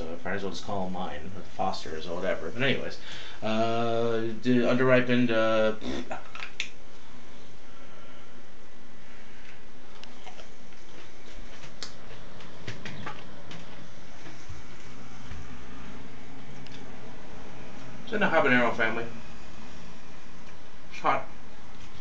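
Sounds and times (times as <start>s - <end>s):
room background: 0.0s - 22.0s
person chewing: 9.4s - 12.5s.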